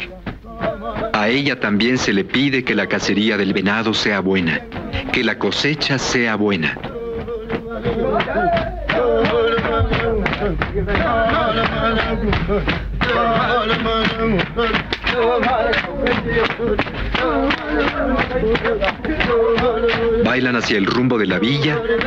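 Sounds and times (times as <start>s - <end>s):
sharp knocking beat: 0.0s - 22.0s
voices singing: 0.0s - 22.0s.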